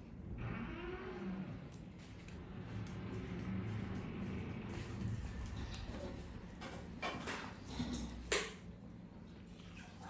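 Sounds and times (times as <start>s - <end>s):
motor vehicle passing: 2.4s - 6.4s.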